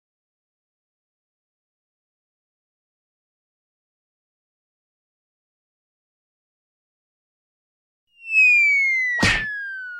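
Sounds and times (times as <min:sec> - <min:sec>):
cartoon falling whistle: 0:08.2 - 0:09.9.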